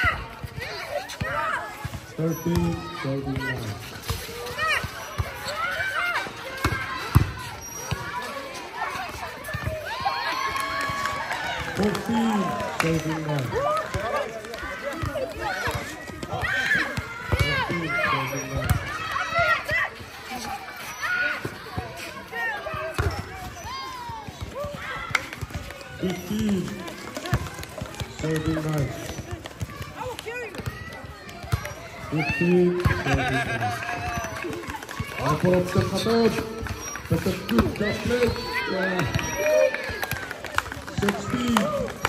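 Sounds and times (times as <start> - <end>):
voices calling out and talking: 0.0 - 42.0.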